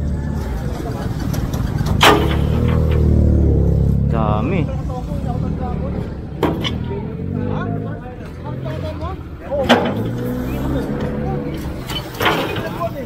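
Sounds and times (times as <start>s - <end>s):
background voices: 0.0s - 13.0s
truck engine idling: 0.0s - 13.0s.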